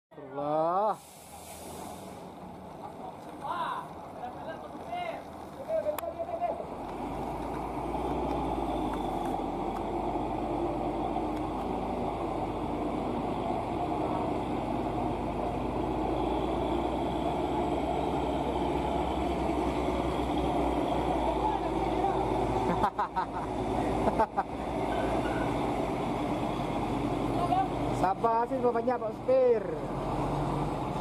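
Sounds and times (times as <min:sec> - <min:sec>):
heavy truck engines labouring: 0:00.9 - 0:31.0.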